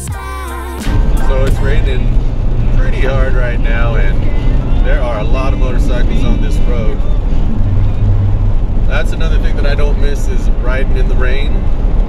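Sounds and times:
engine and tyre rumble: 0:00.8 - 0:12.0
low drone: 0:00.8 - 0:12.0.

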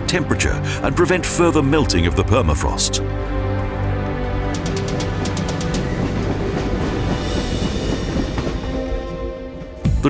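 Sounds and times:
train wheels clattering on rails: 0:04.5 - 0:09.8.

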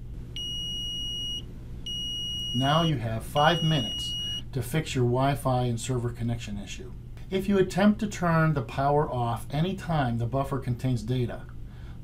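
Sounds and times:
high-pitched electronic beep: 0:00.4 - 0:04.4.

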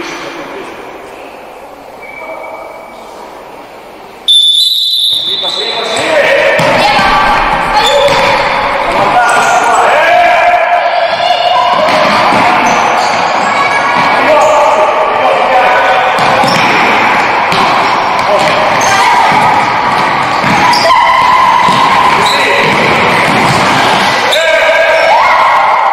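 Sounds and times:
referee's whistle: 0:04.3 - 0:06.0
players and crowd shouting: 0:04.9 - 0:25.9.

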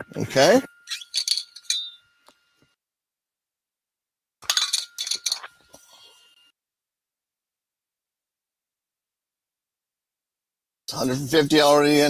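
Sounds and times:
drink bottle clinking: 0:00.8 - 0:02.0, 0:04.4 - 0:05.9.

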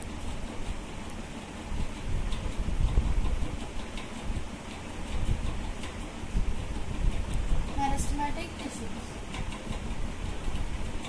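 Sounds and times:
low uneven rumbling: 0:00.0 - 0:11.0.

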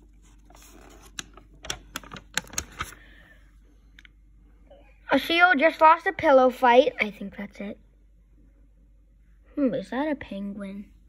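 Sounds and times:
magazine page turning clicks: 0:00.4 - 0:03.0.

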